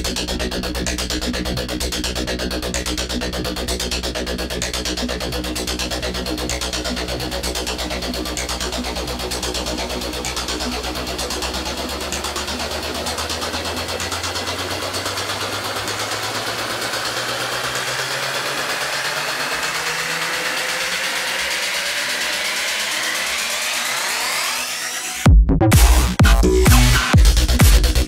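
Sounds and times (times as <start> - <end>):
deep bass notes: 0.0 - 18.3, 25.3 - 28.0
rising synth sweep: 0.0 - 28.0.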